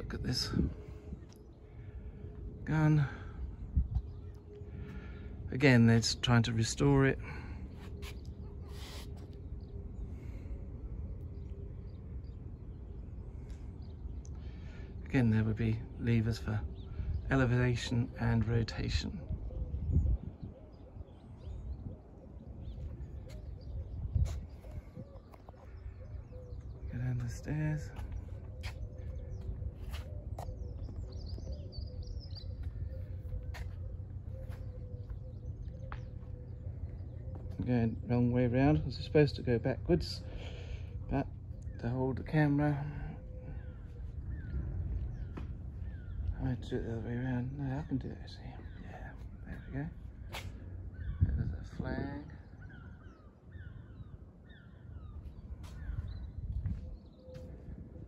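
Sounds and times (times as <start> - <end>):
faint bird chirps: 0.0 - 39.3
steady low rumble: 0.0 - 58.0.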